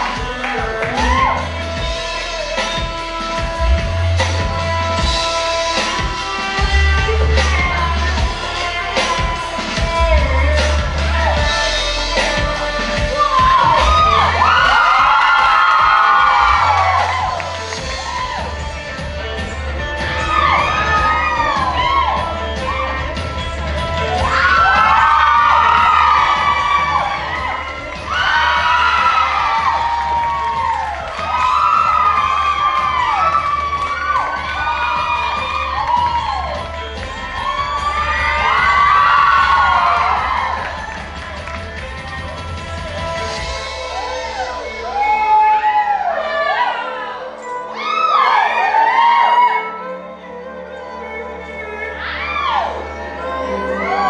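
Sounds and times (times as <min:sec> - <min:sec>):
audience cheering and whooping: 0:00.0 - 0:50.2, 0:52.0 - 0:54.0
backing music with steady bass: 0:00.0 - 0:54.0.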